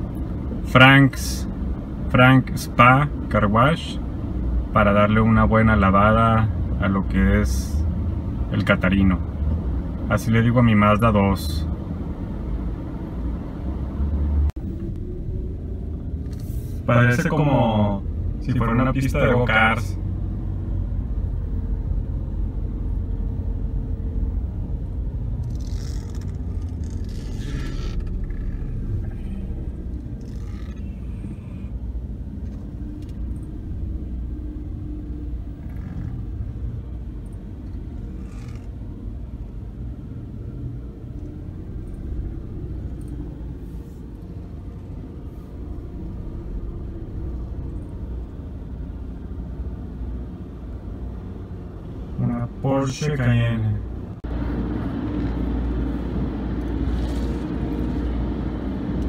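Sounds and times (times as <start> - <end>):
car engine and tyre rumble: 0.0 - 59.0.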